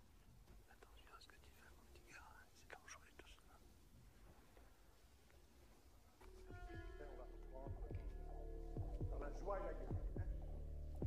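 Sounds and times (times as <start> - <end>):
faint whispered voices: 0.0 - 11.0.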